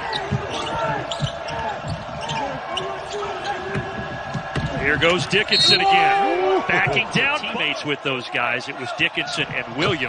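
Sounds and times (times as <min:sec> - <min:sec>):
sneakers squeaking: 0:00.0 - 0:04.7.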